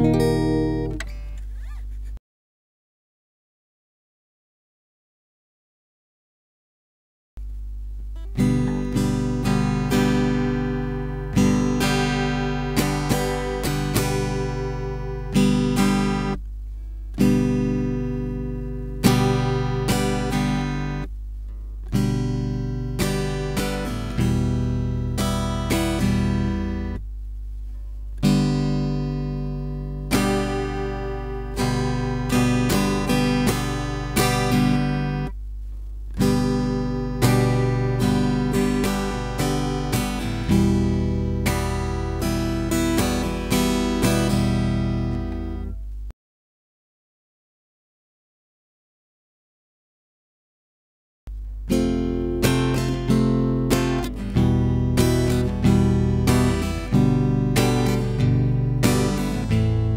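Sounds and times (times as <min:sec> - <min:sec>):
acoustic guitar strumming chords: 0:00.0 - 0:01.4, 0:08.1 - 0:27.1, 0:28.2 - 0:35.4, 0:36.1 - 0:45.9, 0:51.3 - 0:59.9.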